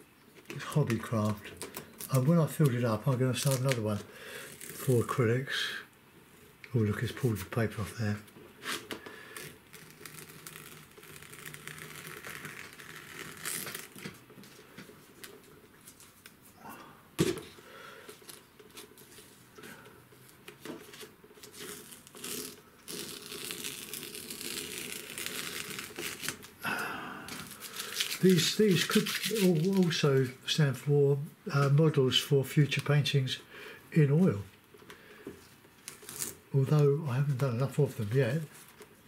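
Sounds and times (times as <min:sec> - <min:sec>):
paper crinkling and rustling: 0:00.4 - 0:05.2, 0:08.1 - 0:16.4, 0:17.4 - 0:19.5, 0:20.2 - 0:26.6, 0:27.3 - 0:30.4
tape peeling off paper: 0:00.4 - 0:05.2, 0:08.6 - 0:14.6, 0:20.2 - 0:26.6, 0:27.3 - 0:30.3, 0:35.8 - 0:36.5.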